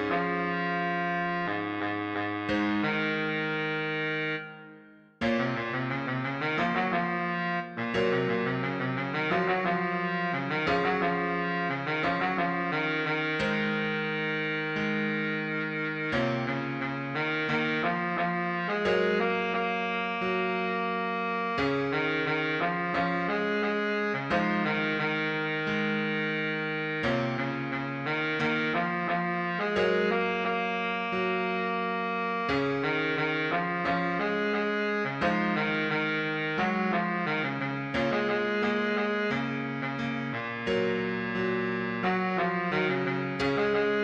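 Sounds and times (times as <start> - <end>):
backing track: 0.0 - 44.0
baritone saxophone melody: 0.0 - 44.0.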